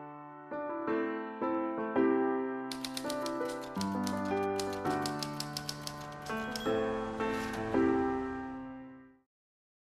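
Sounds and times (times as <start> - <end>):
soft piano music: 0.0 - 9.3
typewriter keystroke clicks: 2.7 - 6.8.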